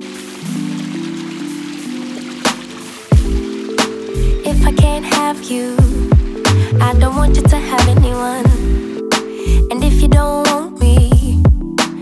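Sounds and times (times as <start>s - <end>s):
fountain jets splashing into pool: 0.0s - 6.6s
music of slow held chords: 0.0s - 12.0s.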